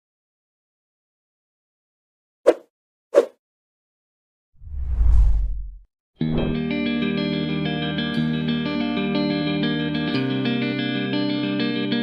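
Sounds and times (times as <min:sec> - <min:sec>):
low rumbling whoosh: 0:04.6 - 0:06.6.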